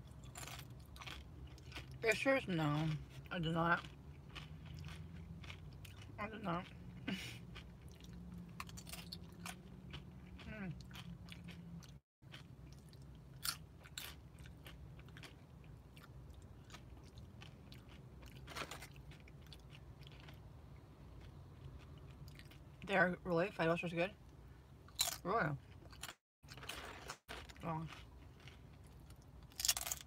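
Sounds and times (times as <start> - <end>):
chewing crunchy chips: 0.0 - 22.8, 24.9 - 30.0.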